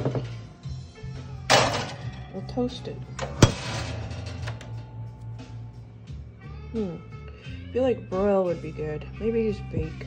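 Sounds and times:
steady low hum: 0.6 - 10.0
toaster oven door clacking shut: 1.5 - 2.2, 3.2 - 4.9.

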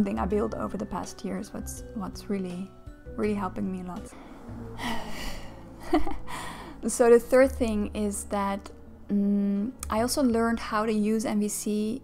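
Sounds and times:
woman breathing in sharply: 4.1 - 6.8
woman laughing: 4.8 - 6.4.

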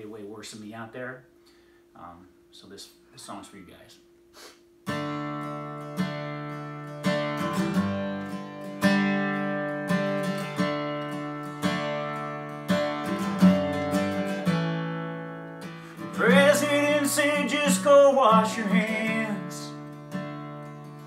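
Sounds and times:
acoustic guitar strumming: 4.8 - 21.0
man singing: 16.1 - 19.8.

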